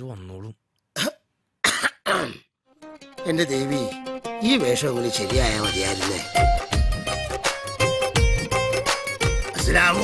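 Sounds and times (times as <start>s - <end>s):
person coughing harshly: 1.0s - 2.5s
plucked string music: 2.7s - 10.0s.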